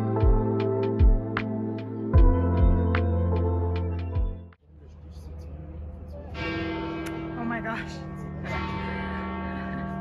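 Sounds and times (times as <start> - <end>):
church bell ringing: 6.3 - 10.0.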